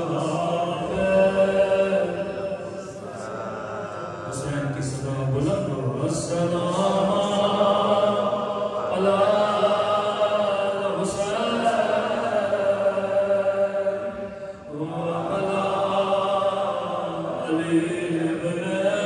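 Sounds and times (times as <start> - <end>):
echoing devotional chanting: 0.0 - 19.0.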